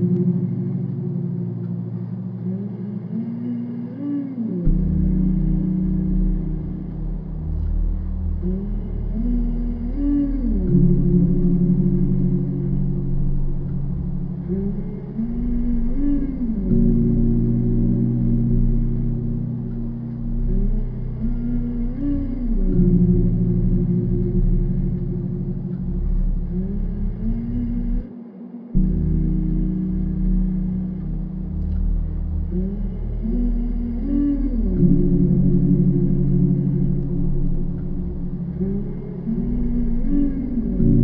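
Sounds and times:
deep bass layer: 0.0s - 28.1s, 28.7s - 41.0s
dark ambient music: 0.0s - 41.0s.

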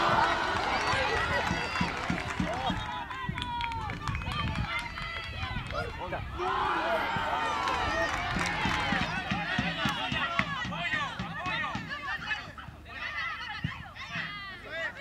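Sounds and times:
voices shouting: 0.0s - 3.2s, 6.3s - 15.0s.

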